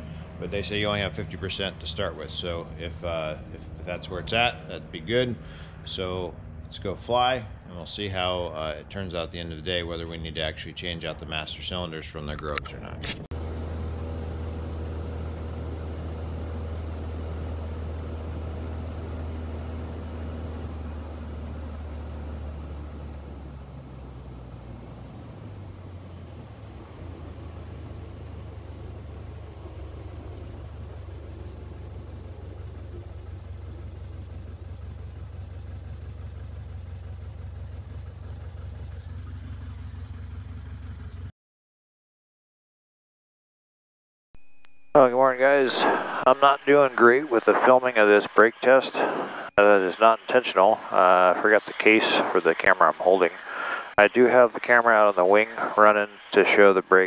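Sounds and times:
light aircraft engine drone: 0:00.0 - 0:41.3, 0:45.0 - 0:57.0.

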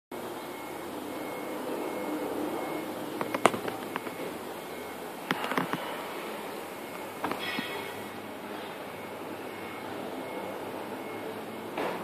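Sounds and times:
urban background noise: 0:00.1 - 0:12.0
sharp clicks and knocks: 0:03.2 - 0:04.2.

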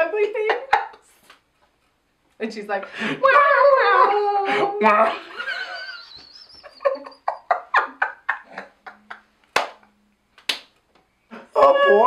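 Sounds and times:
people laughing: 0:03.1 - 0:09.4.

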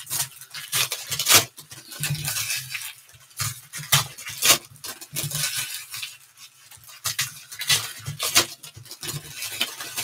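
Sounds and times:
foil wrappers crinkling and tearing: 0:00.0 - 0:10.0.

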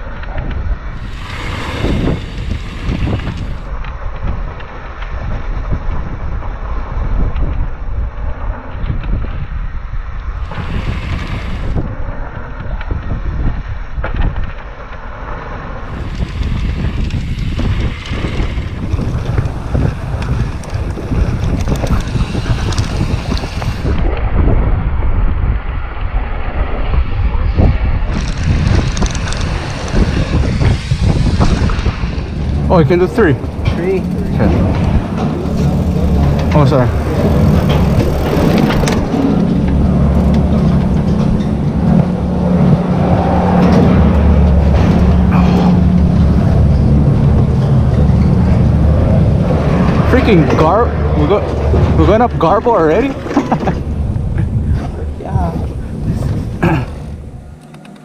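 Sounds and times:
tyres on dirt and gravel: 0:00.0 - 0:05.8, 0:13.8 - 0:24.2, 0:27.7 - 0:58.0
wind buffeting microphone: 0:00.0 - 0:58.0
bike knocking and rattling: 0:15.9 - 0:24.2, 0:27.5 - 0:55.1.

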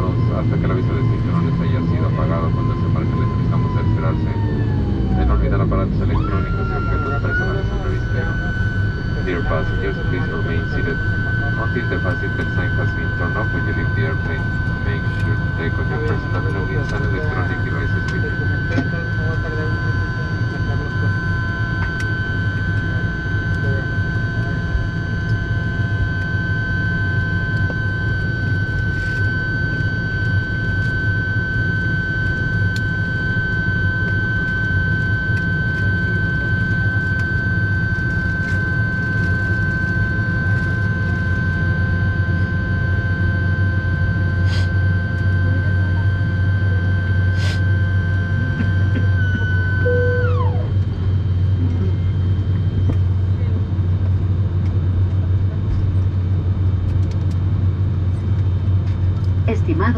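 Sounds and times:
aircraft cabin hum: 0:00.0 - 0:59.9
high whine dropping in pitch: 0:00.0 - 0:59.9.

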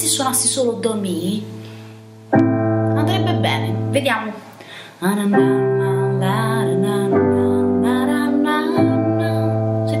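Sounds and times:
digital piano chords: 0:00.0 - 0:10.0
woman singing: 0:04.8 - 0:10.0.

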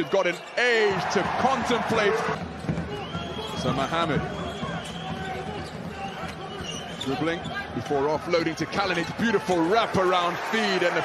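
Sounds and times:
arena crowd hubbub: 0:00.0 - 0:11.0.

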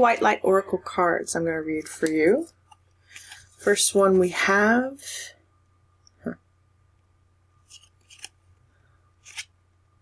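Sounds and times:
cards sliding swishes: 0:07.6 - 0:08.4, 0:09.2 - 0:09.5.

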